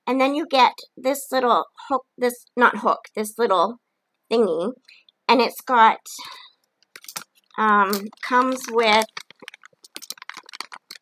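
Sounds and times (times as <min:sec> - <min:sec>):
plastic bag crinkling: 0:06.2 - 0:11.0.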